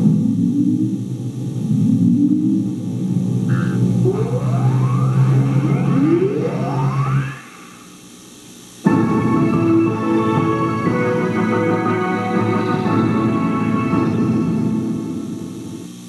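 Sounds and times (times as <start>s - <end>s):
synthesizer drone with pitch sweeps: 0.0s - 16.0s
loud music sting: 2.1s - 7.6s, 8.8s - 15.9s.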